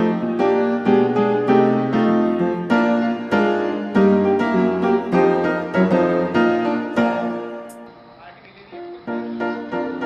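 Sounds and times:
piano music: 0.0 - 10.0.

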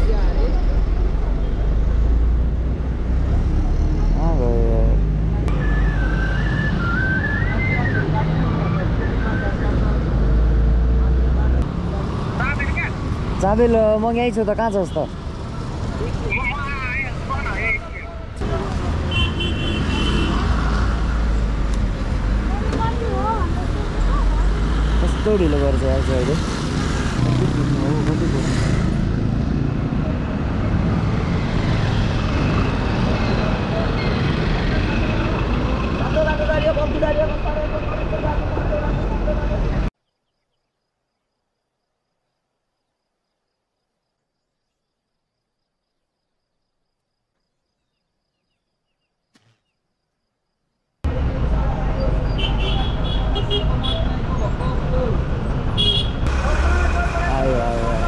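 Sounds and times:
motorcycle engine and road rumble: 0.0 - 40.0, 51.1 - 58.0
voices: 3.1 - 10.3, 11.2 - 21.4, 22.4 - 26.4, 32.6 - 39.9, 51.1 - 58.0
bus passing close: 20.3 - 39.9, 51.1 - 58.0
motorcycle engine: 26.4 - 38.5.

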